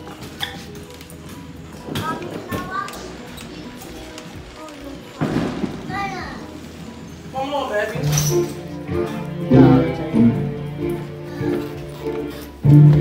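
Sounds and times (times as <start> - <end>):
indistinct background voices: 0.0 - 13.0
music: 0.0 - 13.0.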